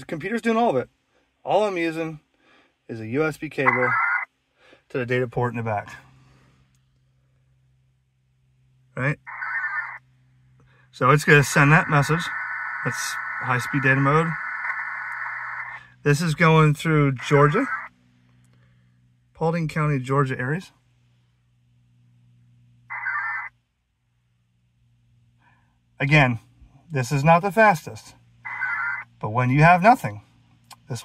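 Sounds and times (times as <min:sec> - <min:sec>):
low steady hum: 0:00.0 - 0:31.0
person speaking: 0:02.9 - 0:04.0, 0:11.0 - 0:14.5
digital data tones: 0:11.2 - 0:15.8.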